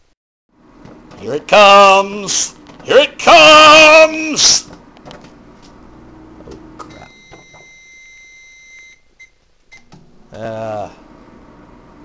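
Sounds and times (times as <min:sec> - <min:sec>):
microwave oven beeping: 0:05.8 - 0:12.0.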